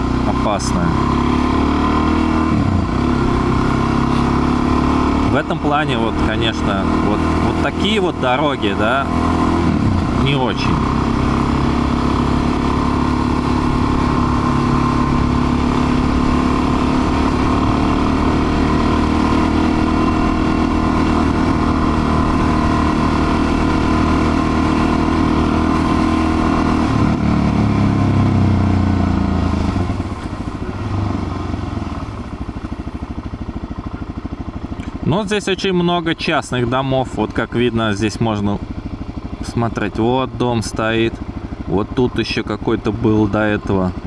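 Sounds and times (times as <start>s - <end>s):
motorcycle engine running: 0.0s - 44.0s.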